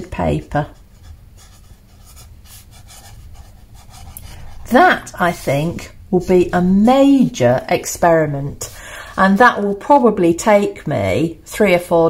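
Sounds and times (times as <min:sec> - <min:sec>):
pen scratching on paper: 0:00.6 - 0:09.7.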